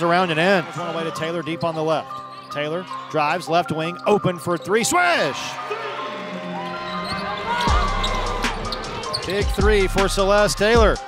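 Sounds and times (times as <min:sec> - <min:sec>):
people shouting: 0:00.0 - 0:01.5, 0:04.8 - 0:09.7
crowd cheering: 0:00.0 - 0:01.6, 0:04.8 - 0:10.9
music with deep bass: 0:07.7 - 0:11.0.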